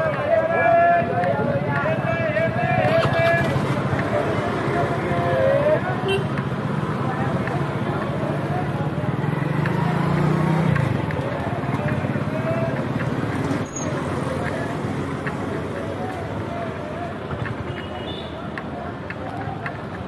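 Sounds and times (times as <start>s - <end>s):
motorbike and scooter engines passing: 0.0s - 20.0s
voices of passers-by: 0.0s - 20.0s.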